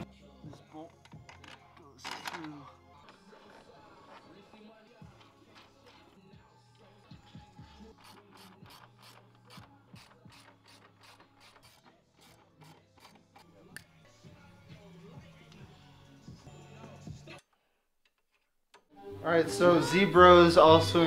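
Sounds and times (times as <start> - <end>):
ratchet wrench clicking: 8.0 - 13.4.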